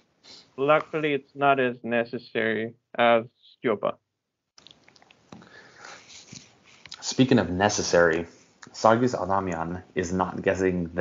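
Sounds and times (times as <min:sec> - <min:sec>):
breathing and sniffing: 0:00.2 - 0:00.6, 0:05.4 - 0:07.0.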